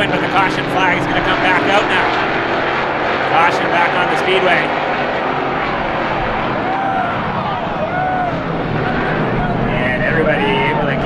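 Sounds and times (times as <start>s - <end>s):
race car engines revving: 0.0s - 11.0s.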